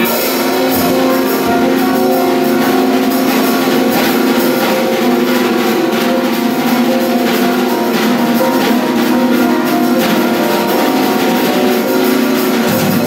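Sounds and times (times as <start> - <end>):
drums and cymbals struck: 0.0 - 13.0
piano notes ringing: 0.0 - 13.0.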